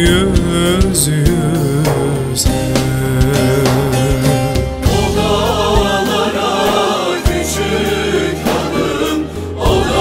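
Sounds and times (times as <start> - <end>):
instrumental accompaniment: 0.0 - 10.0
folk song sung by several voices: 0.1 - 10.0.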